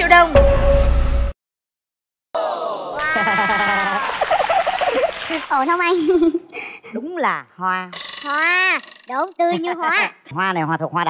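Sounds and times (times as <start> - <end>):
person exclaiming in surprise: 2.4 - 4.2.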